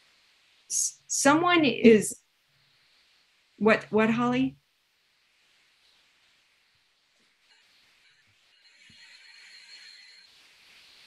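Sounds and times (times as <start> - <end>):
faint hiss: 0.0 - 11.0
thin high whine: 7.2 - 11.0.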